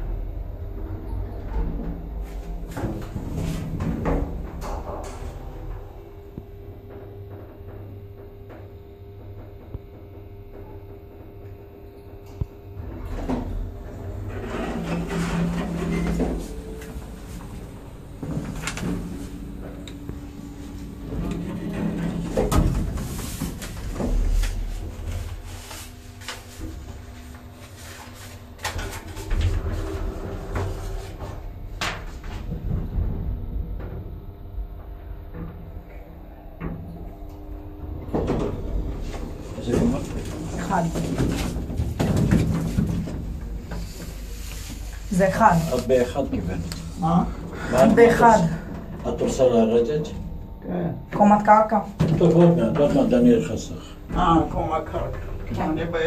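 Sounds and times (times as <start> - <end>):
elevator clunks and knocks: 0.0 - 11.4, 12.1 - 25.6, 28.2 - 56.0
elevator low hum: 0.0 - 56.0.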